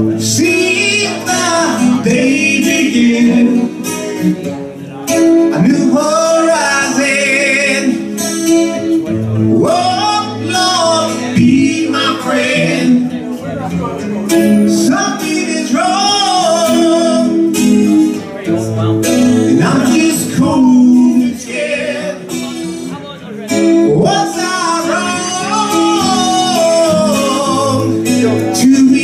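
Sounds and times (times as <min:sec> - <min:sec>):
man singing: 0:00.0 - 0:29.0
strummed acoustic guitar: 0:00.0 - 0:29.0.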